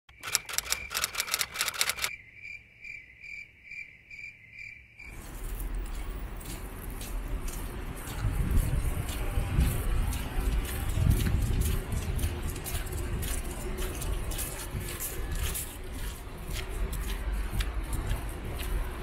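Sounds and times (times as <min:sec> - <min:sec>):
quick clicks: 0:00.1 - 0:02.2
street ambience: 0:00.1 - 0:19.0.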